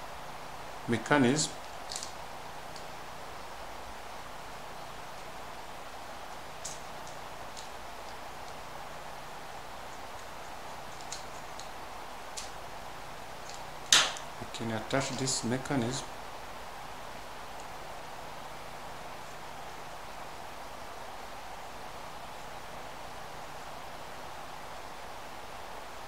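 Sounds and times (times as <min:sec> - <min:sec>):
steady hiss: 0:00.0 - 0:26.0.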